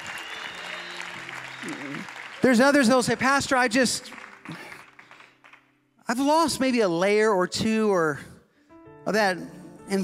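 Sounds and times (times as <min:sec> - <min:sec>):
crowd applause: 0:00.0 - 0:05.6
worship band music: 0:00.0 - 0:10.0.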